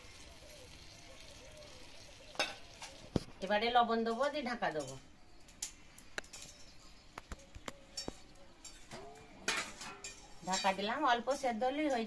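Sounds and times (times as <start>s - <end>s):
curry sizzling in a wok: 0.0s - 5.6s.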